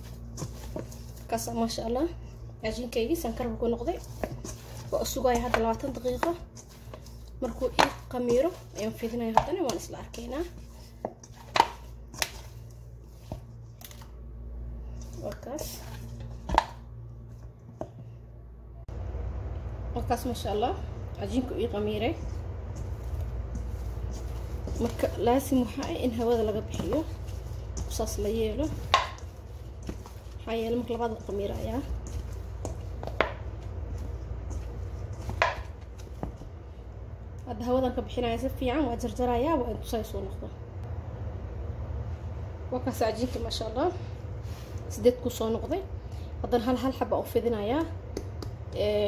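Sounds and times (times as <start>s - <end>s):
hands kneading dough: 0.0s - 14.2s, 14.8s - 18.2s, 20.1s - 40.0s, 42.9s - 49.0s
steady low hum: 0.0s - 49.0s
dough knocking against metal bowl: 35.2s - 36.4s.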